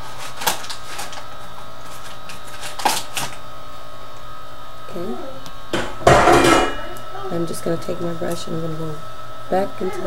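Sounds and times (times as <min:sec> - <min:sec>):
faint constant whine: 0:00.0 - 0:10.0.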